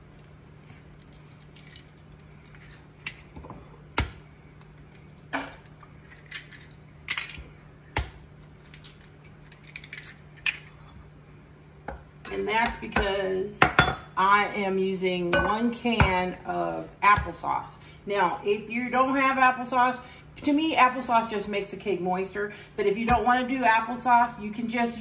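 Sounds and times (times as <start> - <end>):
eggs cracking against glass: 0.1 - 3.4, 4.0 - 10.8.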